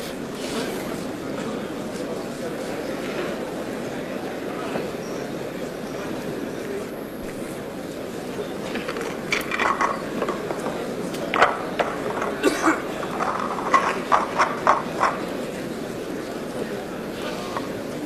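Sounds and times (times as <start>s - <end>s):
audience murmur: 0.0s - 18.0s
snooker balls clicking: 8.6s - 15.5s.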